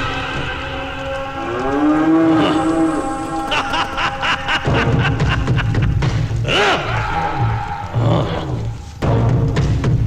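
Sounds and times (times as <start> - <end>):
low moo-like call: 0.7 - 3.5.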